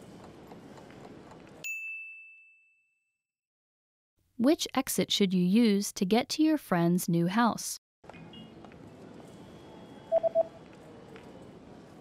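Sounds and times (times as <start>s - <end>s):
quick electronic beeps: 10.1s - 10.6s.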